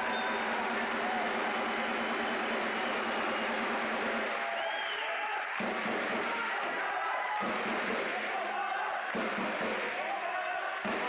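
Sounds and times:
crowd noise and voices: 0:00.0 - 0:11.0.

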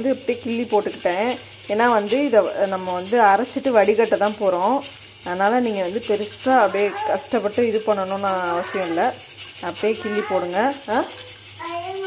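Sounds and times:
woman speaking: 0:00.0 - 0:11.2.

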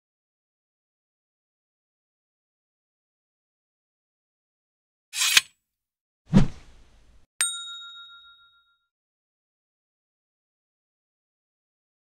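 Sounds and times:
bright bell-like ding: 0:07.4 - 0:08.9.

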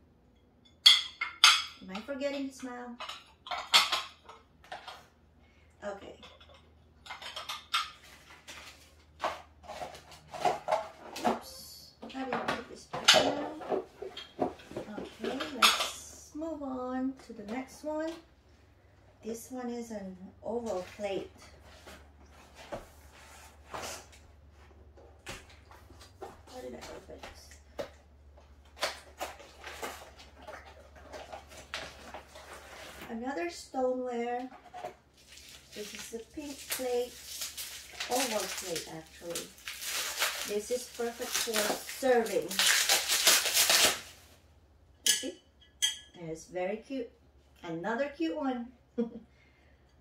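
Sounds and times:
cardboard scraping: 0:29.0 - 0:33.1
stoneware plates clinking: 0:45.0 - 0:46.2.

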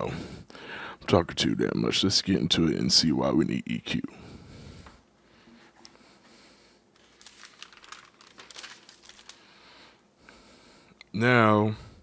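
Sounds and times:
small clicks and crinkling: 0:07.0 - 0:09.5.

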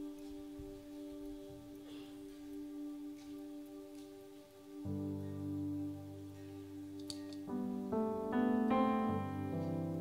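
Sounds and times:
keyboard: 0:00.0 - 0:10.0.

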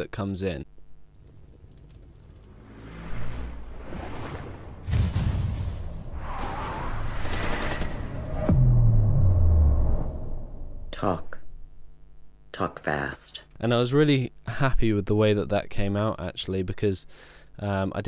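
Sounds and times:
dark rumbling score: 0:02.2 - 0:12.1
car whooshing past: 0:02.5 - 0:10.9
wave crash: 0:02.8 - 0:10.8
fireball burst: 0:03.1 - 0:10.8
car crashes: 0:04.7 - 0:10.6
sharp hit: 0:04.8 - 0:11.7.

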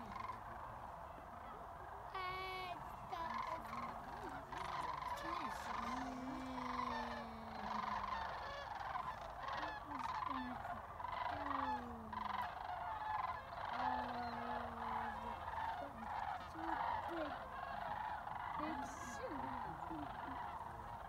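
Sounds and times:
flock of cranes calling: 0:00.0 - 0:21.0.

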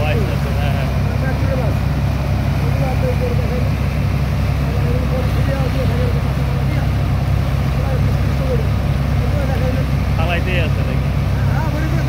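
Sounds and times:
pump engine drone: 0:00.0 - 0:12.0.

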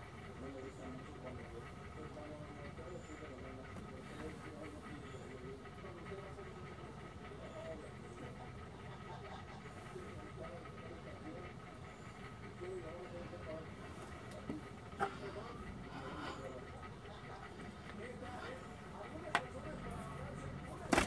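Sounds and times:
faint indistinct voices: 0:00.0 - 0:21.0
steady thin hum: 0:00.0 - 0:21.0.

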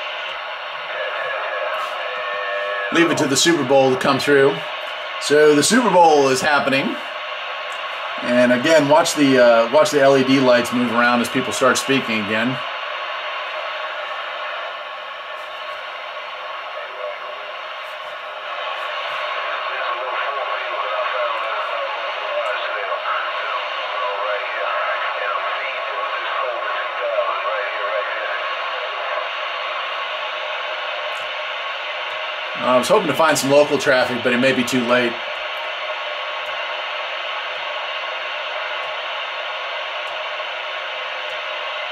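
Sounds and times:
garbled voices over radio: 0:00.0 - 0:07.0, 0:18.6 - 0:30.0, 0:32.5 - 0:35.2
radio static: 0:00.0 - 0:41.9.

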